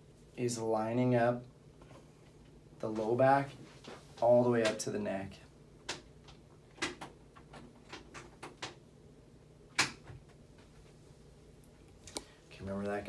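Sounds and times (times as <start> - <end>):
faint room hum: 0.0 - 13.0.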